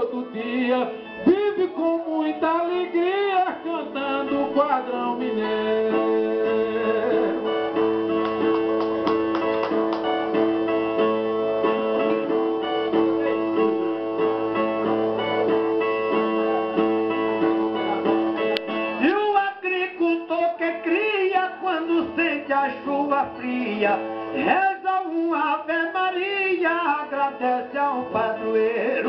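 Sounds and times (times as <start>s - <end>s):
man singing: 0.0s - 7.8s, 19.0s - 29.0s.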